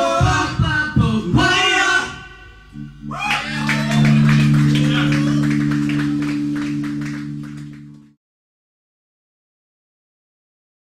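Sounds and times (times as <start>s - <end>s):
rock band sustained chord: 2.5s - 8.1s.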